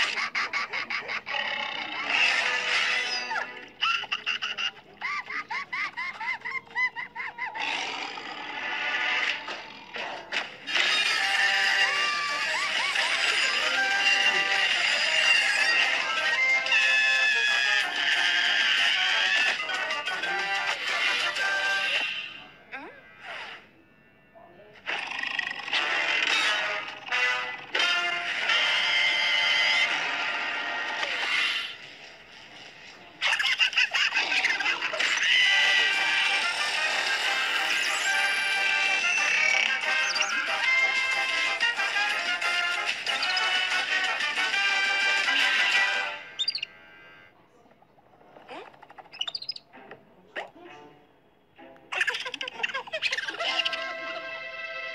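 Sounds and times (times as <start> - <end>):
cartoon background music: 0.0 - 23.7, 24.9 - 32.1, 33.2 - 47.2, 48.2 - 54.9
high chirping sound effects: 37.5 - 40.5, 46.4 - 46.8, 48.8 - 49.6.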